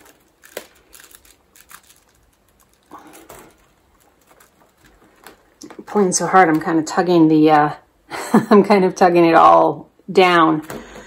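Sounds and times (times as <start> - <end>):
basket weaving rustling and clicks: 0.0 - 6.7.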